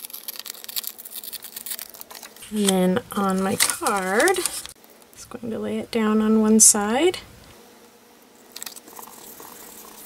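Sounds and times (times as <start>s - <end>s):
paper tearing and crackling: 0.0s - 4.8s.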